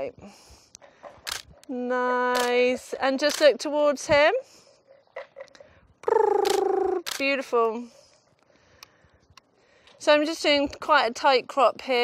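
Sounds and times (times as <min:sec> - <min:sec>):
person's lip trill: 0:06.0 - 0:07.2.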